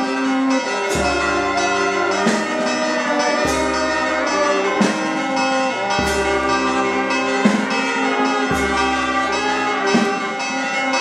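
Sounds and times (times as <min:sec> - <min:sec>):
church bells ringing: 0:00.0 - 0:11.0
deeper bell: 0:00.0 - 0:11.0.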